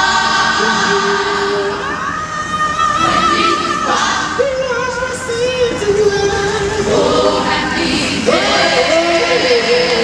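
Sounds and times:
choir singing: 0:00.0 - 0:04.8, 0:06.4 - 0:10.0.

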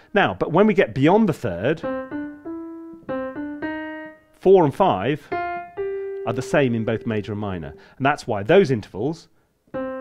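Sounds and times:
piano notes stepping upward: 0:00.4 - 0:08.6, 0:09.7 - 0:10.0.

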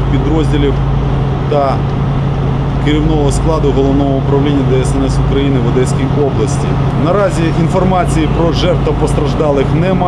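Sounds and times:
man speaking: 0:00.0 - 0:00.9, 0:01.5 - 0:01.9, 0:02.8 - 0:10.0
vehicle engine idling: 0:00.0 - 0:10.0.

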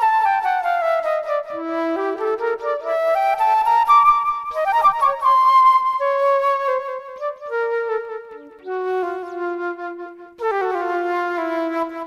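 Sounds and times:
solo flute: 0:00.0 - 0:12.0.

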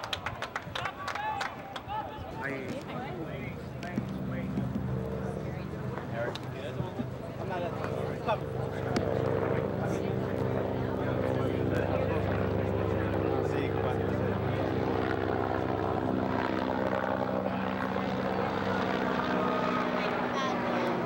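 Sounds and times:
people talking: 0:00.0 - 0:21.0
droning engine hum: 0:02.0 - 0:21.0.

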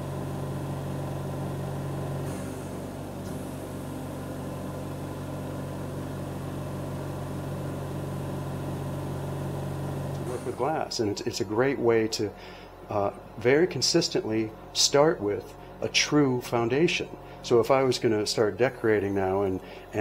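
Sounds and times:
oxygen concentrator running: 0:00.0 - 0:20.0.

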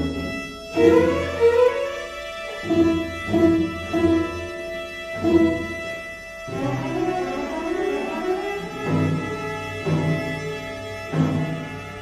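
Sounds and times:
string orchestra playing: 0:00.0 - 0:12.0.

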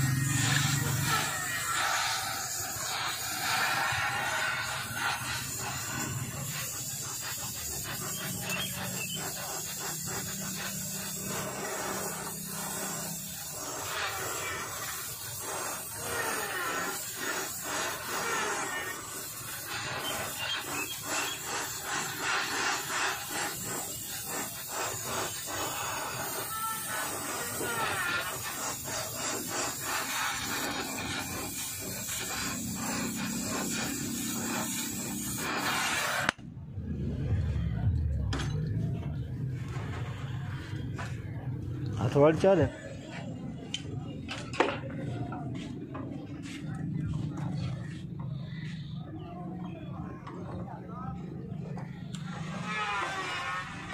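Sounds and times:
metal scraping strokes: 0:00.0 - 0:41.4, 0:52.0 - 0:53.9
gas torch hissing: 0:00.0 - 0:43.9, 0:45.4 - 0:53.9
low hum: 0:36.4 - 0:41.7
metal scraping on metal: 0:52.1 - 0:53.9.

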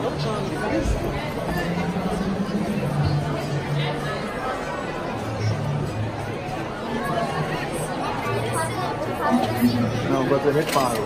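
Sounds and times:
people talking: 0:00.0 - 0:11.0
low steady hum: 0:09.3 - 0:10.3.

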